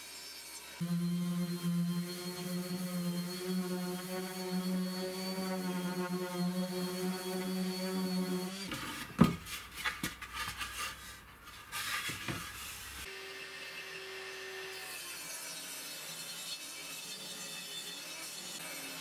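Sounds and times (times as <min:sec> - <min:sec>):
orbital sander humming: 0:00.8 - 0:08.7.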